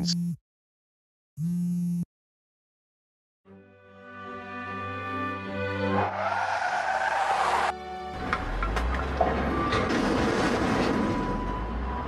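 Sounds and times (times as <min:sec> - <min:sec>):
background music: 0:03.5 - 0:10.0
cartoon tyres skidding: 0:05.9 - 0:08.6.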